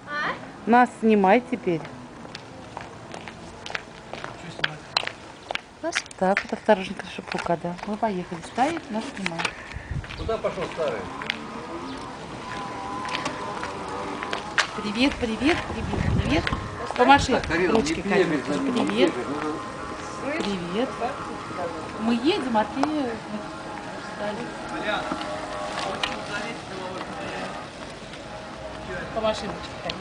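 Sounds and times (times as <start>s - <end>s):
outdoor noise: 0.0s - 30.0s
faint voices talking: 5.8s - 30.0s
thin motor whine: 8.9s - 30.0s.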